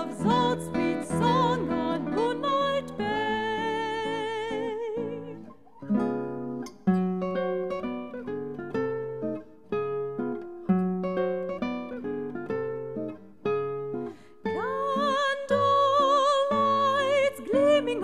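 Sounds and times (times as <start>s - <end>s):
soprano singing with vibrato: 0.0s - 5.6s, 14.4s - 18.0s
solo acoustic guitar: 0.0s - 18.0s.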